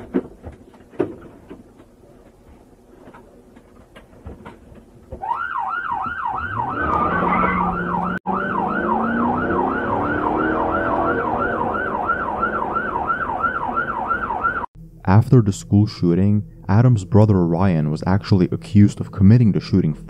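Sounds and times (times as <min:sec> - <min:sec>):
police siren yelping: 0:05.2 - 0:14.7
car engine revving: 0:06.3 - 0:14.0.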